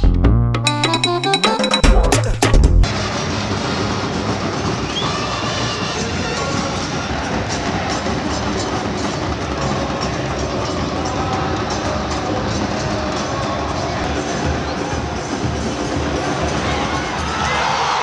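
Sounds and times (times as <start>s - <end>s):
drums beating: 0.0s - 11.9s
stadium crowd singing and chanting: 2.9s - 17.7s.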